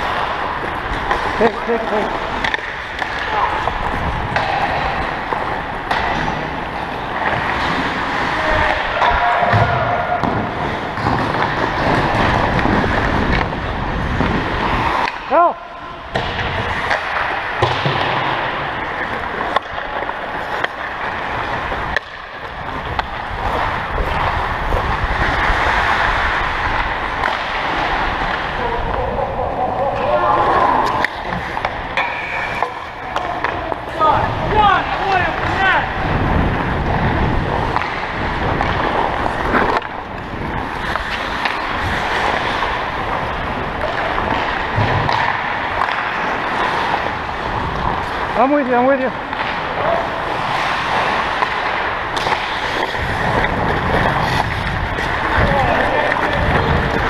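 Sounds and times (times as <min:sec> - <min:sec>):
hockey sticks and puck clacking: 0:00.0 - 0:57.0
skate blades scraping ice: 0:00.0 - 0:57.0.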